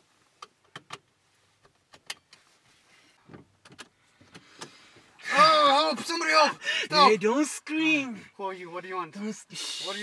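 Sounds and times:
clicks and rustles in car cabin: 0.2s - 5.1s.

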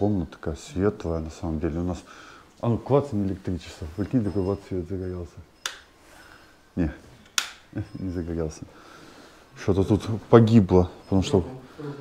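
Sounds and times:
light switch click: 5.6s - 5.9s, 7.3s - 7.6s.

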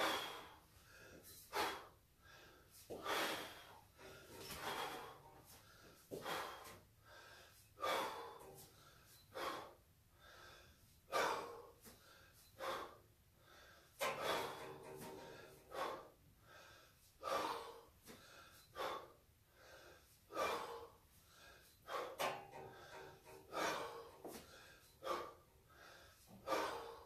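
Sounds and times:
man breathing forcefully: 0.0s - 27.0s.

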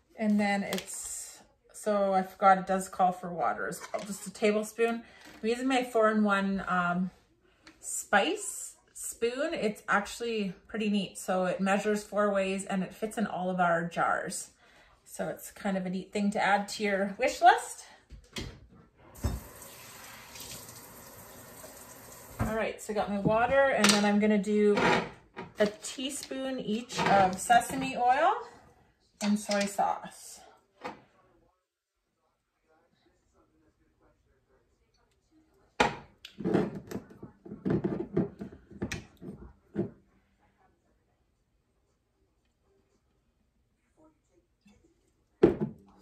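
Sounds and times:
kitchen faucet running: 19.2s - 22.5s.

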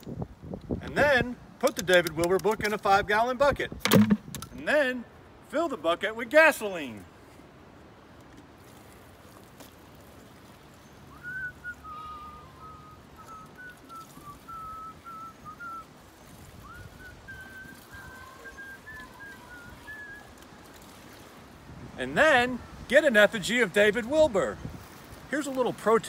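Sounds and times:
faint background noise: 0.0s - 26.0s
man whistling a slow tune: 11.1s - 15.9s, 16.6s - 20.3s.

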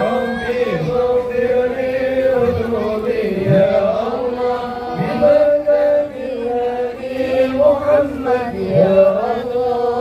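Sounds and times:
voices chanting devotional praise: 0.0s - 10.0s.

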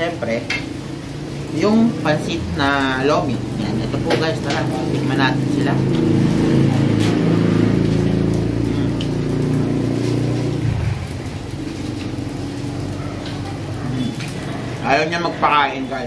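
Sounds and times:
vehicle engine running: 0.0s - 16.0s.

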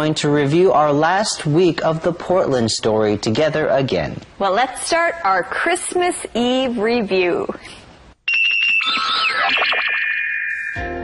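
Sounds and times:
chime-like musical sting: 10.5s - 11.0s.

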